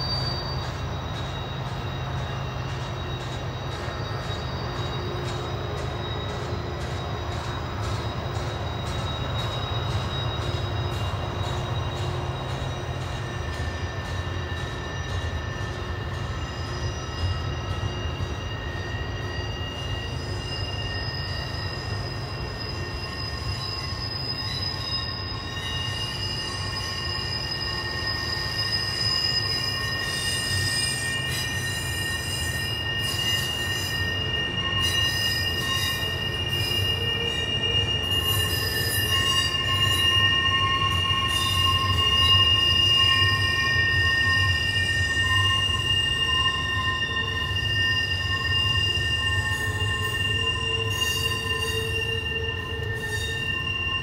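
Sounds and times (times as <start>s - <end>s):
high-pitched wheel squeal: 0.0s - 54.0s
rumble of wheels on rail: 0.0s - 54.0s.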